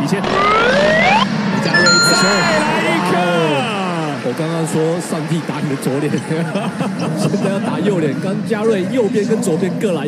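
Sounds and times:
electronic tone: 0:01.8 - 0:03.2.

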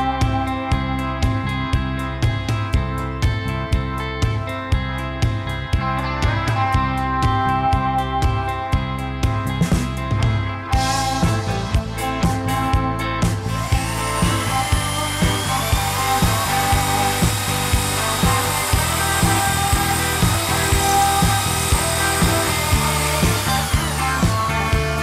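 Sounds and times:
background music with steady beat: 0:00.0 - 0:25.0
electric drill whining: 0:10.8 - 0:25.0.

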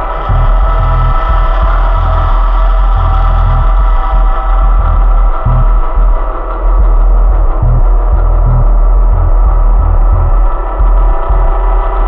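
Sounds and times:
deep bass note pulsing: 0:00.0 - 0:12.0
synthesizer drone chord: 0:00.0 - 0:12.0.

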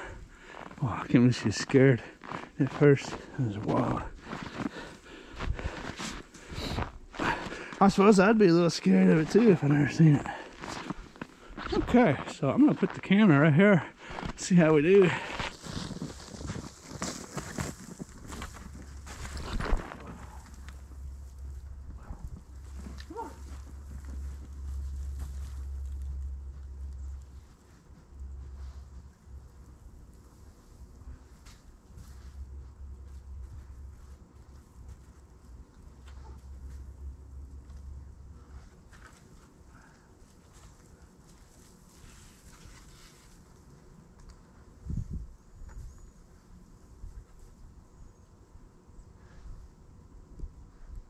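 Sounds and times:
camera bedded into snow: 0:00.0 - 0:43.8
footsteps crunching in snow: 0:00.1 - 0:37.0, 0:38.4 - 0:43.7
low rumble: 0:17.6 - 0:30.2.

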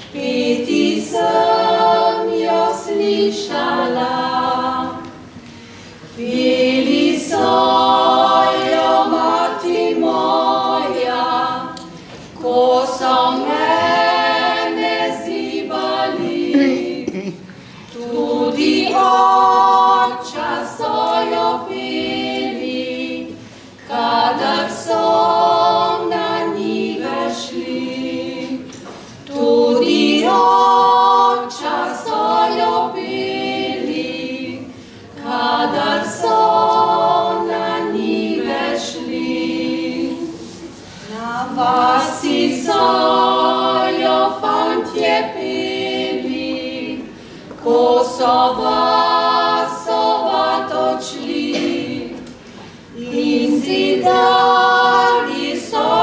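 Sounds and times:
women singing in harmony: 0:00.0 - 0:17.2, 0:17.8 - 0:56.0.

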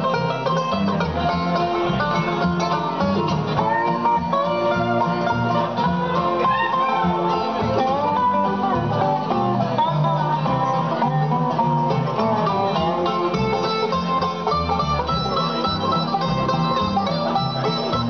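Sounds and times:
acoustic guitar: 0:00.0 - 0:18.0
banjo: 0:00.0 - 0:18.0
dobro: 0:00.0 - 0:18.0
mandolin: 0:00.0 - 0:18.0
upright bass: 0:00.0 - 0:18.0.

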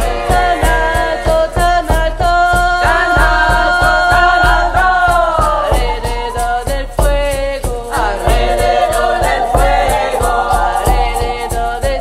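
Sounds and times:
deep drum beat: 0:00.0 - 0:12.0
high percussion pulse: 0:00.0 - 0:12.0
layered voices singing: 0:00.0 - 0:12.0.

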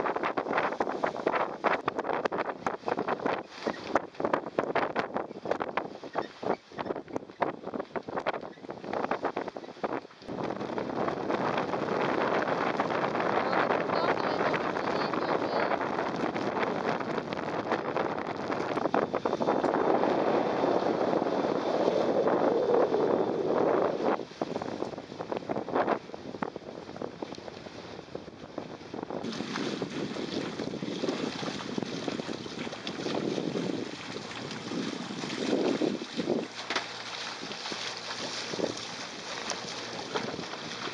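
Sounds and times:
water rushing along hulls: 0:00.0 - 0:40.9
wind blowing over microphone: 0:00.0 - 0:40.9.

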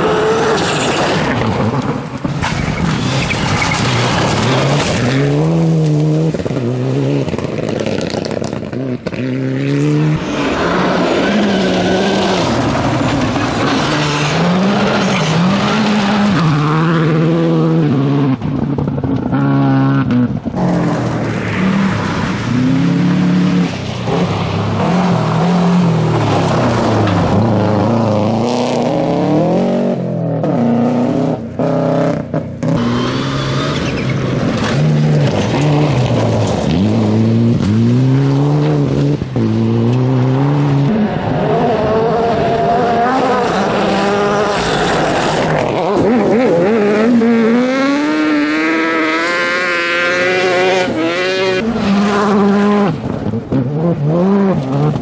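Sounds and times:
rally car engines revving: 0:00.0 - 0:55.0
tyres on loose gravel: 0:00.5 - 0:08.7, 0:32.9 - 0:38.0.

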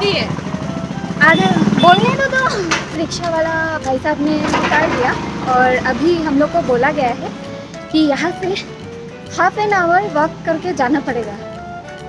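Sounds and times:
vehicle engine running: 0:00.0 - 0:11.3
voices talking: 0:00.0 - 0:11.4.

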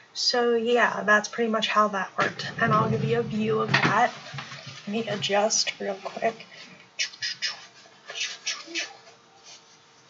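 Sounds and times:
clothing rustling: 0:02.5 - 0:06.8.

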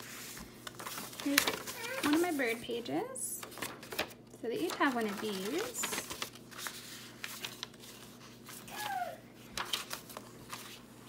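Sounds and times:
paper pages rustling: 0:00.0 - 0:11.0.

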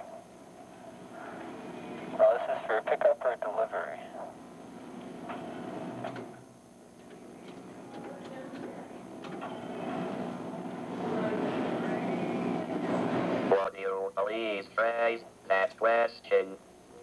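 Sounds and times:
indistinct murmur and noise: 0:00.0 - 0:17.0.

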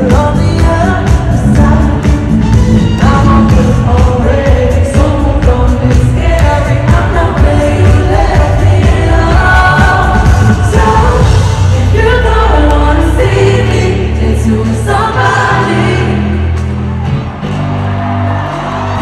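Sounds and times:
person singing: 0:00.0 - 0:16.6
bass-heavy backing track: 0:00.0 - 0:19.0.

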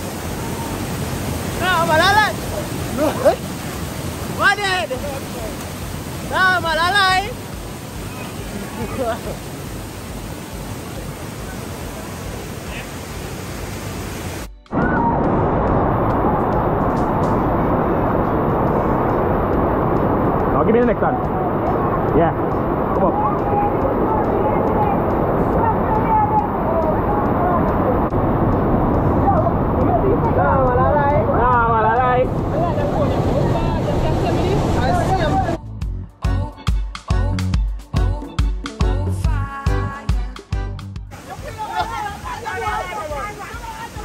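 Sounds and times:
river rushing over rocks: 0:00.0 - 0:35.6, 0:41.1 - 0:44.0
waterfall pouring and splashing: 0:00.0 - 0:35.6, 0:41.1 - 0:44.0
voices: 0:20.5 - 0:35.6, 0:41.2 - 0:44.0.

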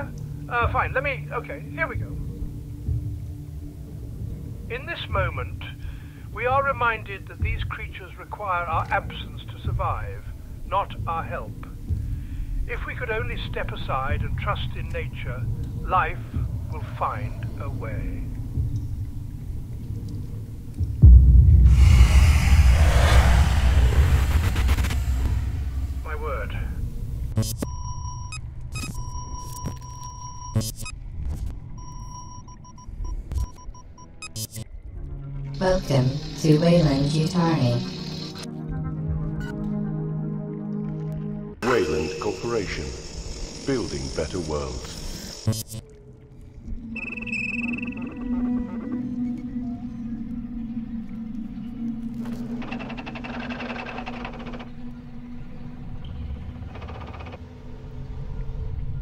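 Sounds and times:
low drone hum: 0:15.4 - 0:27.5
low rumble: 0:18.0 - 0:27.4
electronic beeps: 0:27.4 - 0:31.0, 0:47.0 - 0:48.3
crackling static with warbling tones: 0:41.6 - 0:45.9
sharp glitchy clicks: 0:45.3 - 0:45.8.

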